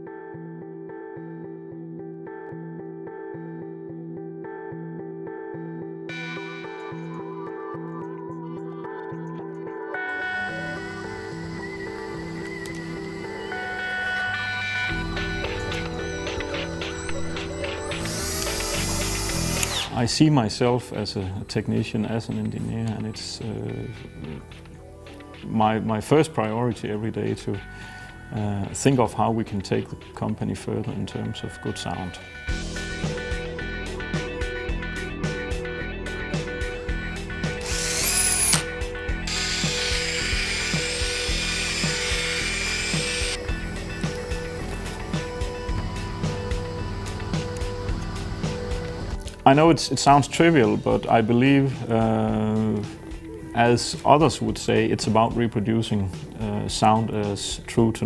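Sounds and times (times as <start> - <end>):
background music with beat: 2.3 - 58.0
rotary polisher running: 17.4 - 19.9, 37.6 - 45.0
cordless screwdriver motor: 18.0 - 20.0, 37.6 - 44.3
rising whine: 37.6 - 49.2.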